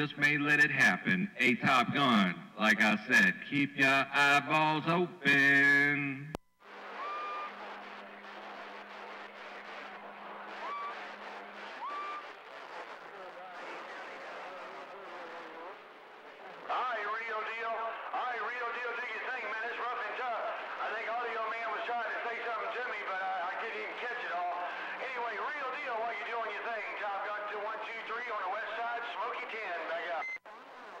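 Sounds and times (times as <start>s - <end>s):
voices over cb radio: 0.0s - 31.0s
short radio chirps: 6.7s - 13.0s.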